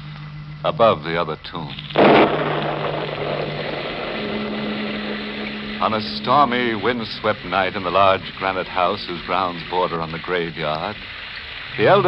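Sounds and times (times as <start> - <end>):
low held note: 2.0 - 10.8
wind and rain rushing: 2.0 - 12.0.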